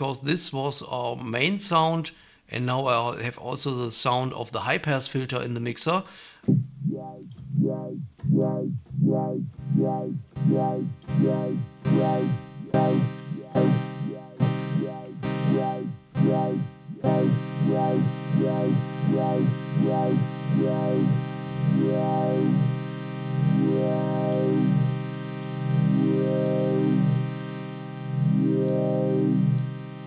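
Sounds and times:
synth drone with filter sweeps: 0:06.5 - 0:30.0.

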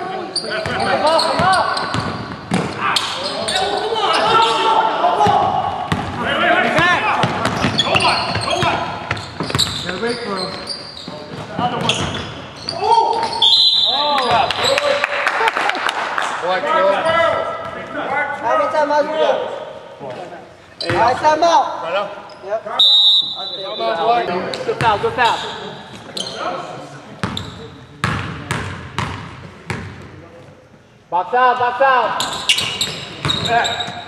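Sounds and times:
players calling out: 0:00.0 - 0:19.7
basketball bouncing on hardwood floor: 0:07.2 - 0:09.8.

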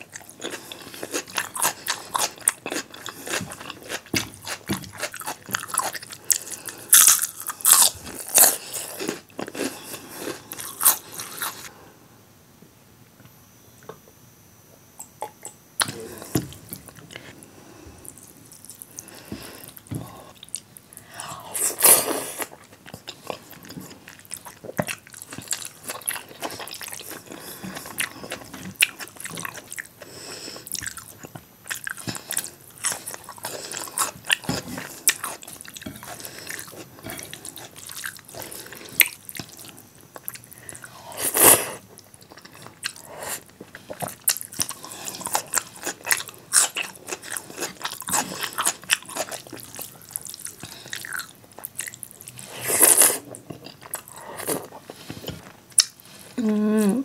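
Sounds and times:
person chewing with wet mouth sounds: 0:00.0 - 0:11.7, 0:18.0 - 0:57.0.

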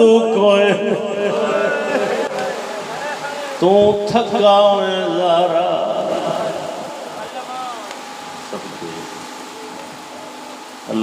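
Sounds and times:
man's voice: 0:00.0 - 0:07.9
faint constant tone: 0:00.5 - 0:11.0
background whirr and hiss: 0:01.3 - 0:11.0.

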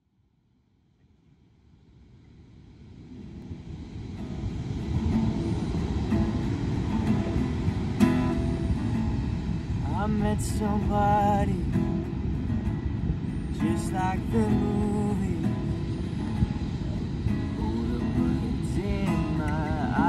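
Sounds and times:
wind: 0:00.0 - 0:20.0
surf rushing: 0:02.8 - 0:20.0
acoustic guitar: 0:03.1 - 0:20.0.

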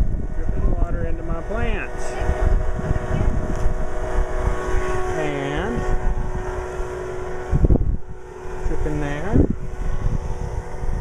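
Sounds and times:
faint steady hum: 0:00.0 - 0:11.0
wind rumbling on microphone: 0:00.0 - 0:11.0.

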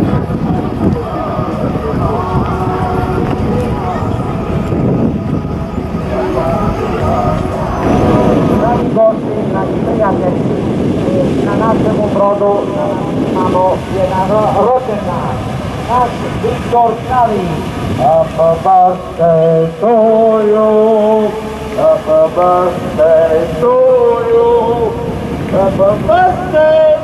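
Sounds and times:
boat engine rumbling: 0:00.0 - 0:27.0
group of people singing: 0:00.7 - 0:09.8, 0:18.0 - 0:27.0.

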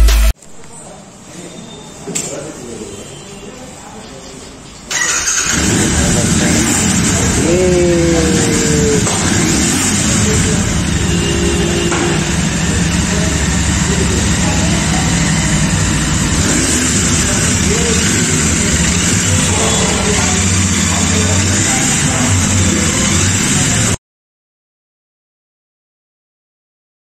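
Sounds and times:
voices in background: 0:00.5 - 0:24.0
motorcycle engine idling: 0:04.9 - 0:23.9.

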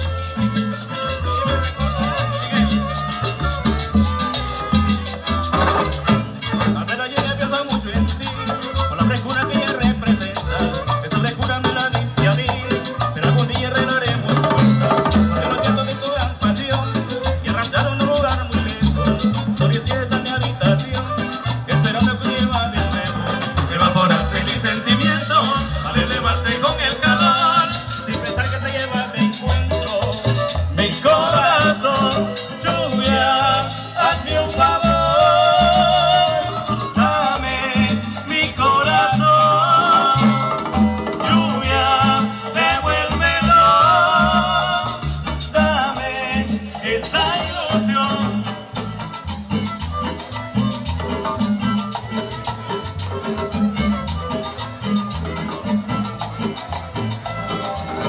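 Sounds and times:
percussion dance beat: 0:00.0 - 0:58.0
plucked upright bass: 0:00.0 - 0:58.0.

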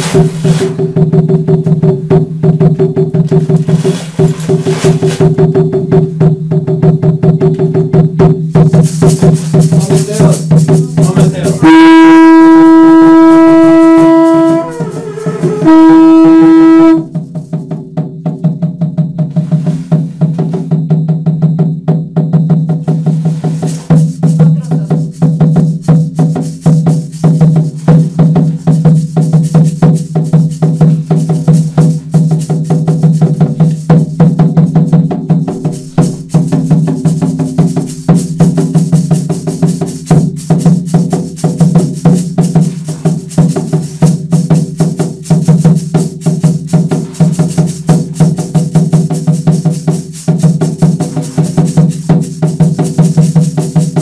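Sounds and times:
rapid drumbeat: 0:00.0 - 0:54.0
long horn blasts: 0:11.6 - 0:17.2.

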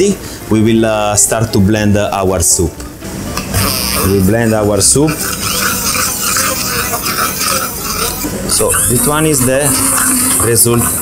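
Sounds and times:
immersion blender in a saucepan: 0:05.1 - 0:11.0.

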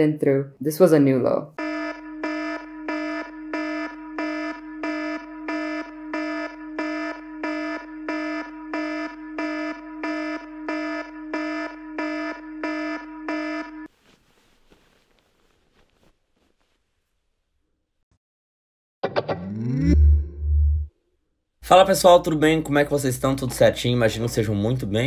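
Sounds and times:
pulsing buzzy electronic alarm: 0:01.6 - 0:13.9.

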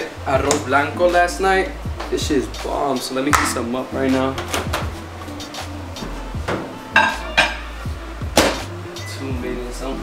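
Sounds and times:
quiet background music: 0:00.0 - 0:10.0
glass bowl and dishes clinking: 0:06.9 - 0:07.7.

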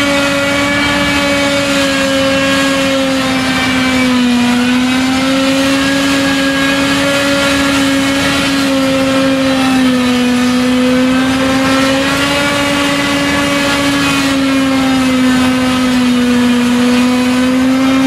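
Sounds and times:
forage harvester drone: 0:00.0 - 0:18.0
tractor running: 0:00.0 - 0:18.0.

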